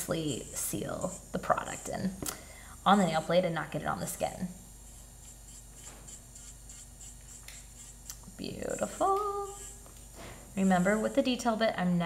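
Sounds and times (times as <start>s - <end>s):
electric nail file humming: 0.0s - 11.8s.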